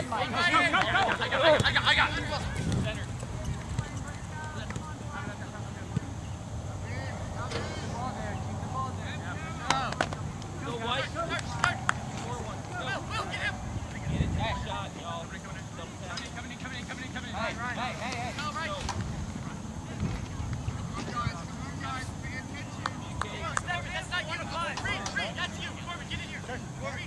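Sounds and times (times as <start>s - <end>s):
distant players shouting: 0.0s - 15.6s.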